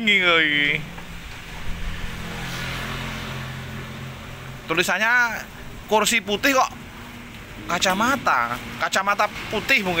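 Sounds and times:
vehicle engine humming: 0.1 - 10.0.

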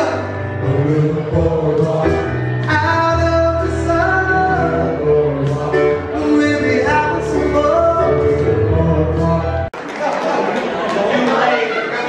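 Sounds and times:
piano with singing: 0.0 - 9.8
crowd chatter: 0.0 - 12.0.

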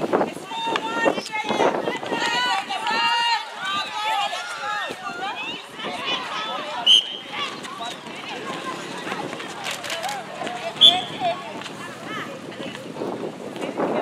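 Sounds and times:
people calling and shouting: 0.0 - 14.0
short sharp whistle blast: 6.8 - 7.2.

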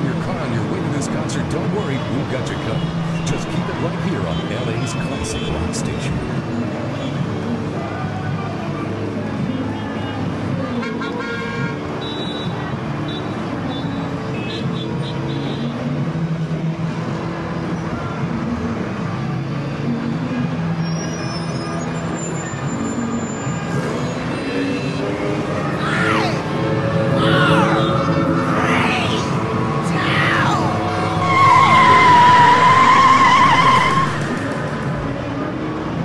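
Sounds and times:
engines running in traffic: 0.0 - 36.0
car horns honking: 10.8 - 12.5, 30.7 - 34.8.

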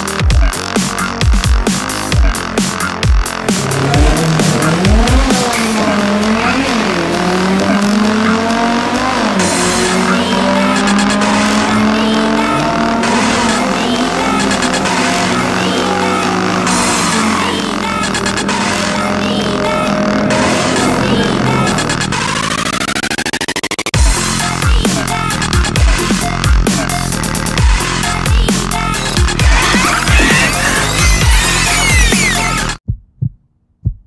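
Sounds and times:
electronic music: 0.0 - 32.8
car engine accelerating hard: 1.9 - 23.4, 26.8 - 32.6.

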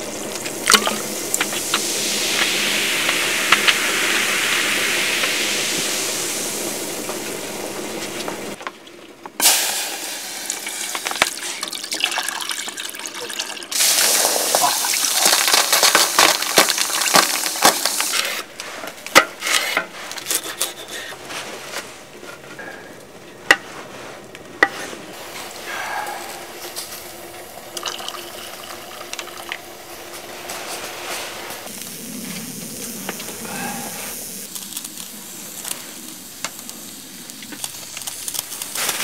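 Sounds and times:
liquid pouring into metal pot: 0.0 - 7.7, 9.4 - 18.1, 27.1 - 29.9
carbonated drink fizzing: 0.0 - 18.5, 25.2 - 39.0.

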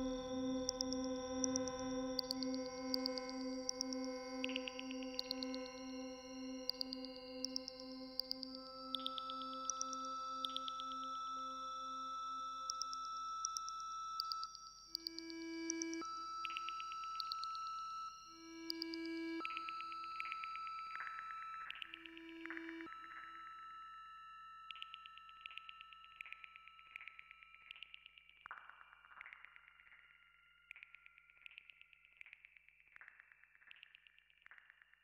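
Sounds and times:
ambient music with pulsing notes: 0.0 - 34.8.

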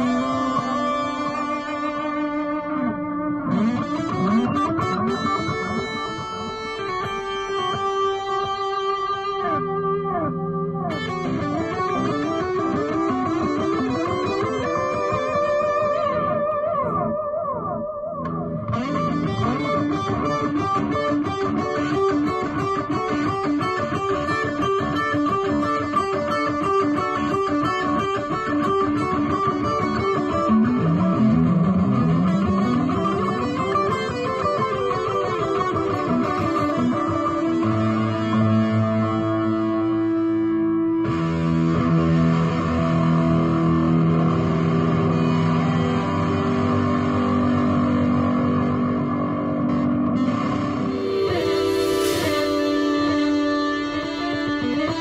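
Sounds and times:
electric guitar lead with delay: 0.0 - 55.0.

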